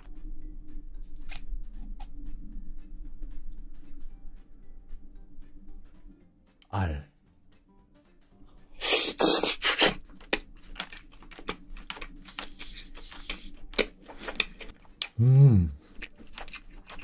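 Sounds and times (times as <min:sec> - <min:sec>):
person slurping: 0:08.8 - 0:10.0
wet chewing clicks and smacks: 0:09.5 - 0:15.2, 0:15.8 - 0:17.0.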